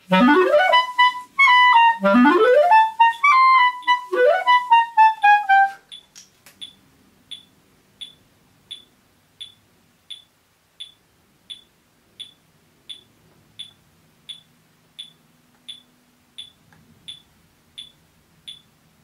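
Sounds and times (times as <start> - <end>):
metronome ticking: 0.1 - 18.8.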